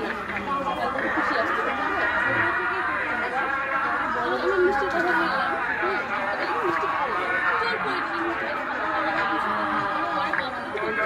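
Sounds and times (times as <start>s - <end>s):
mixed voices: 0.0s - 11.0s.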